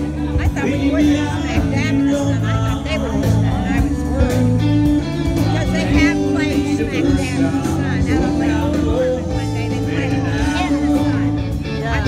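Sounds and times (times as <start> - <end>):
lead electric guitar: 0.0 - 12.0
low bass notes: 0.0 - 12.0.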